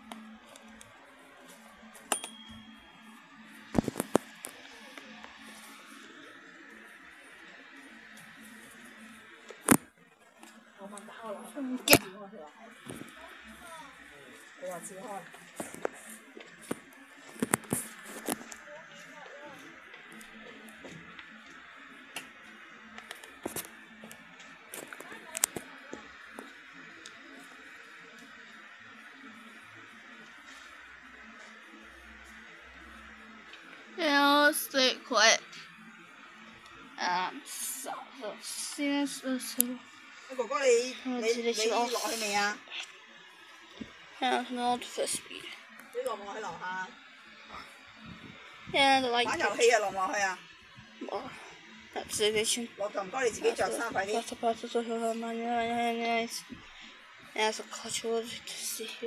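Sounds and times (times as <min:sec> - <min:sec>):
small fan motor humming: 0:00.0 - 0:59.0.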